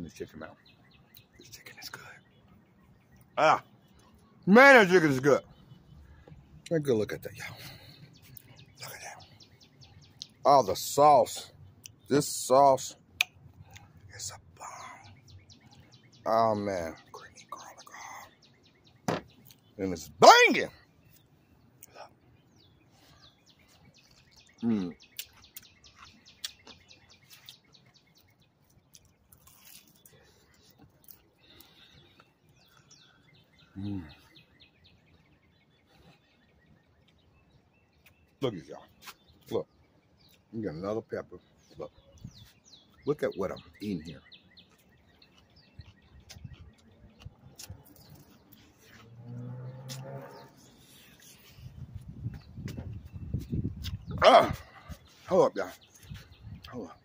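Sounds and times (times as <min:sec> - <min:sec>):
birds chirping: 0:00.0 - 0:57.0
chewing and lip smacking: 0:23.6 - 0:32.9, 0:44.6 - 0:49.0.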